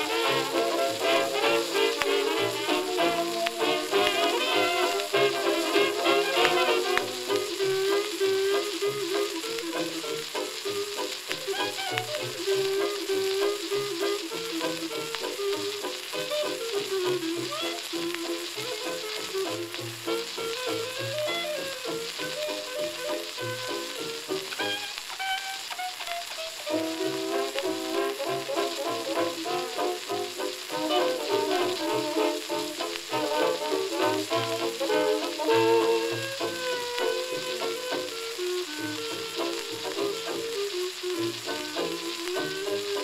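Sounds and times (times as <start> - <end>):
jazz dance orchestra playing: 0.0 - 43.0
record crackle and hiss: 0.0 - 43.0.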